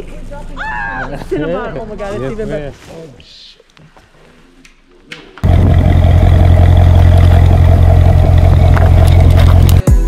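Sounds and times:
car engine roar: 5.4s - 9.8s.

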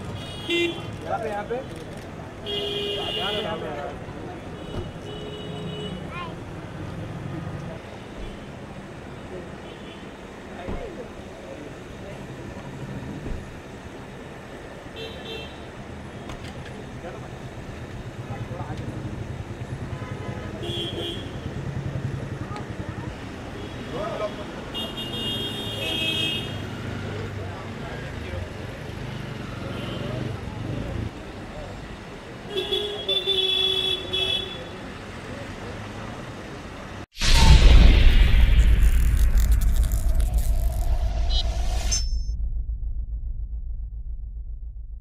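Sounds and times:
low engine hum: 39.6s - 45.0s.

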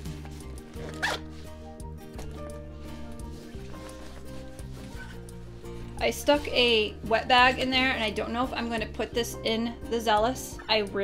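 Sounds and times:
quiet background music: 0.0s - 11.0s
zipper pull on fabric pouch: 0.2s - 1.7s, 3.2s - 5.4s.

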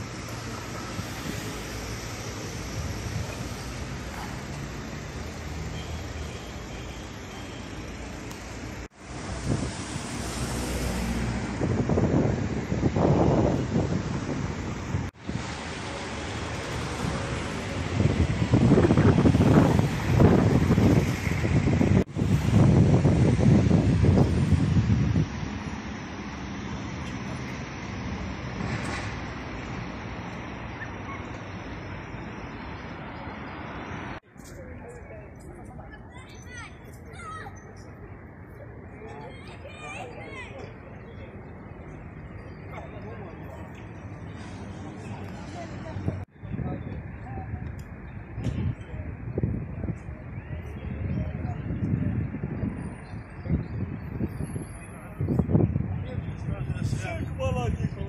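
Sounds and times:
road traffic noise: 0.0s - 58.0s.

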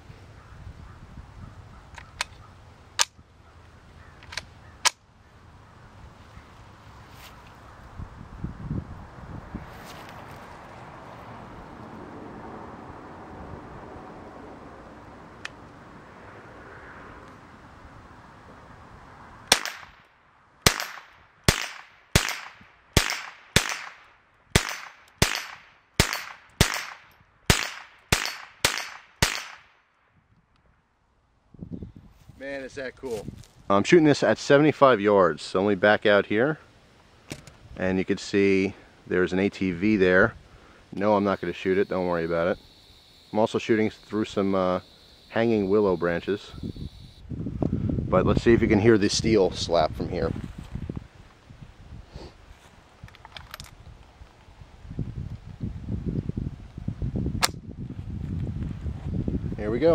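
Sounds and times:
rifle shots with echo: 19.5s - 20.0s, 20.6s - 29.8s.

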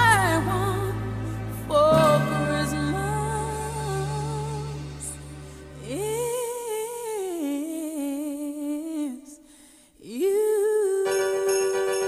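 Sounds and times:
pop backing music: 0.0s - 7.7s
person singing a long wordless note: 0.0s - 9.4s.

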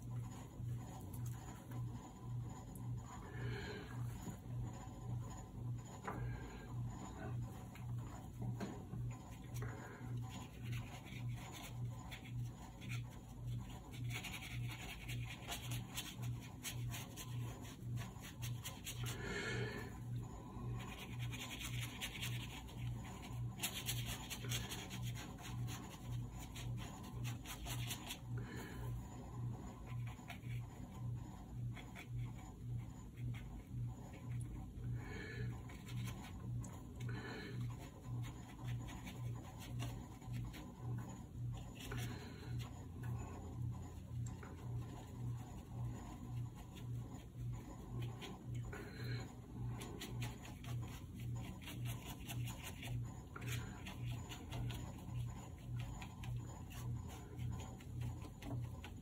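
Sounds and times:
brush scratching on paper: 0.0s - 59.0s
pulsing low hum: 0.0s - 59.0s.

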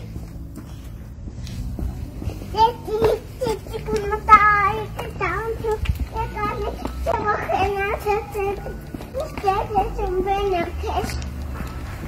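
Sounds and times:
toddler babbling: 2.5s - 11.2s.

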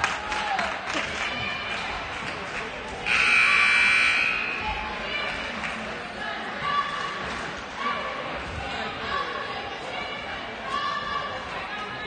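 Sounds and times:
crowd chatter: 0.0s - 12.0s
scoreboard buzzer blast: 3.0s - 4.7s.

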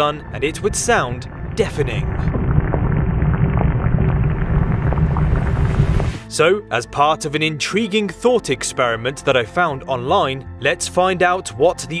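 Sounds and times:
low rumble: 0.0s - 6.3s
faint crackling: 0.5s - 6.2s.

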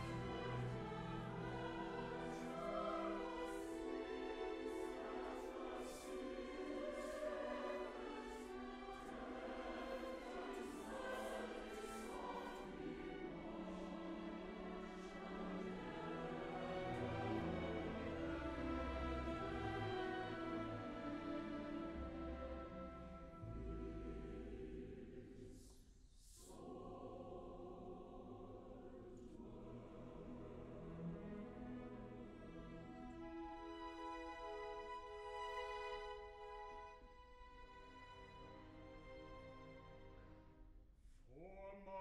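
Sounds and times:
choir singing held notes: 0.0s - 34.1s.

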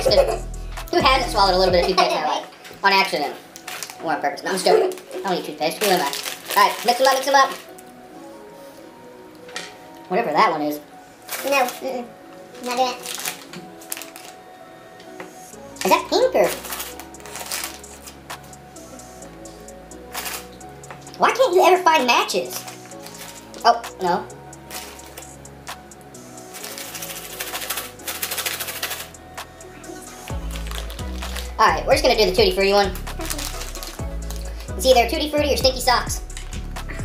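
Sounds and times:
faint background music: 0.0s - 37.0s
candy packet clicking and rustling: 3.6s - 4.1s, 4.7s - 8.0s, 11.3s - 12.0s, 12.6s - 14.4s, 15.8s - 18.6s, 20.1s - 21.6s, 22.2s - 24.1s, 24.7s - 25.4s, 26.5s - 29.2s, 30.3s - 34.7s.

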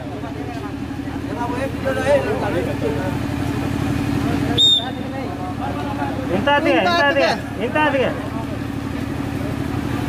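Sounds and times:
crowd chatter: 0.0s - 10.0s
low engine-like drone: 0.0s - 10.0s
referee's whistle blast: 4.6s - 5.0s.

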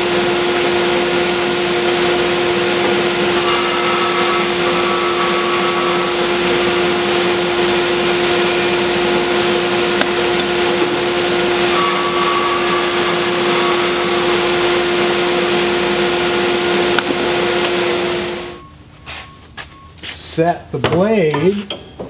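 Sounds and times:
band saw cutting wood: 0.8s - 18.6s.

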